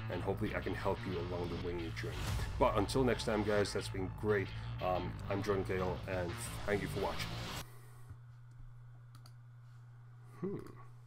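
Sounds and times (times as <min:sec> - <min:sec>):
low steady hum: 0:00.0 - 0:11.0
computer mouse clicks: 0:08.5 - 0:09.4.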